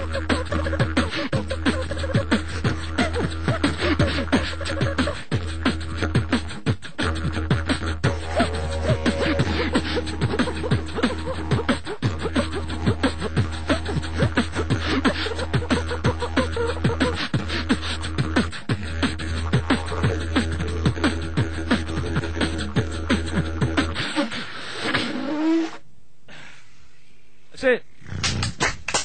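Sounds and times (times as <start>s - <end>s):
beatboxing: 0.0s - 25.8s, 28.0s - 28.8s
hummed tones: 0.0s - 26.2s.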